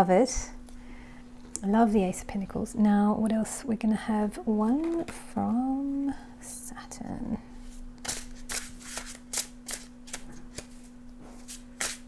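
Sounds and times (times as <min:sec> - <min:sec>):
cards being shuffled: 0:08.0 - 0:12.0.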